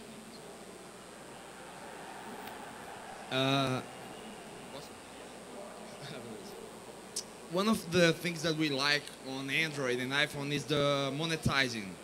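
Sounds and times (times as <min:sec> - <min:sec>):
faint distant voices: 0:00.0 - 0:08.2
event hall background noise: 0:00.0 - 0:12.0.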